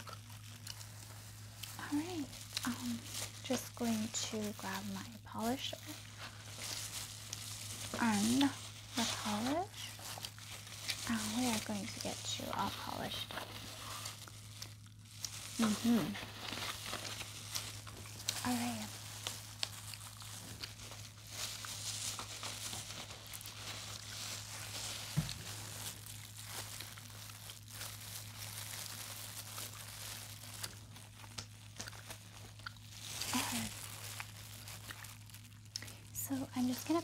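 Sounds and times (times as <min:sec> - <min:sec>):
low electrical hum: 0:00.0 - 0:37.0
packaging crinkling and rustling: 0:00.0 - 0:37.0.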